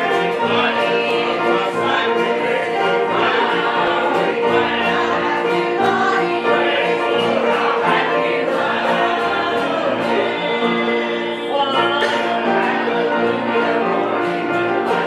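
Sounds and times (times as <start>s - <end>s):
banjo: 0.0s - 15.0s
choir singing a hymn: 0.0s - 15.0s
guitar: 0.0s - 15.0s.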